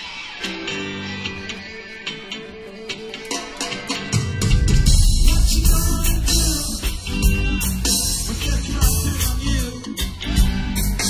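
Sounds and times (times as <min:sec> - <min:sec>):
guitar ringing notes: 0:00.2 - 0:08.5.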